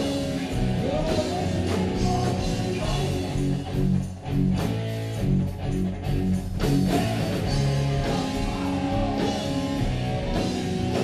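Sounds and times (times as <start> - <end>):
drums: 0.0 - 11.0
electric guitar chords: 0.0 - 11.0.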